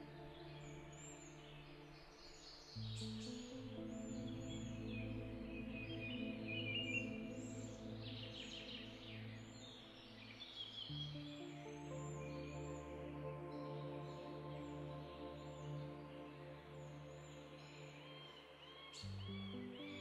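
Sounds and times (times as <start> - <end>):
soft ambient music chords: 0.0 - 20.0.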